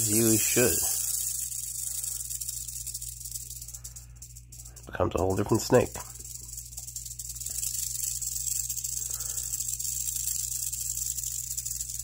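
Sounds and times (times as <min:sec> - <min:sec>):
rattlesnake rattling: 0:00.0 - 0:12.0.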